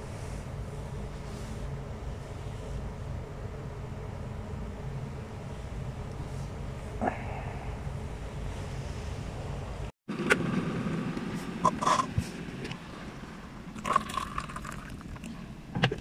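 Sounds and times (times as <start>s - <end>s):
steady low hum: 0.0s - 15.8s.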